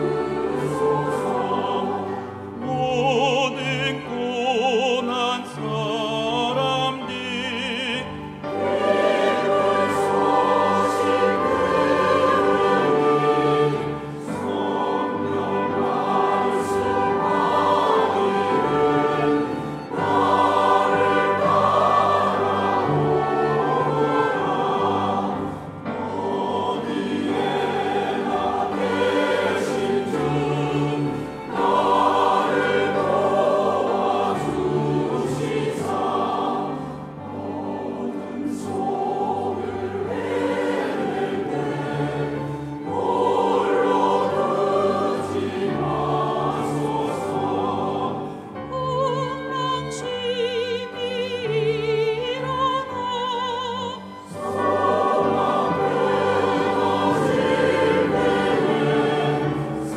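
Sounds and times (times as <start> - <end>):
church choir singing a hymn: 0.0 - 59.9
orchestral accompaniment: 0.0 - 59.9.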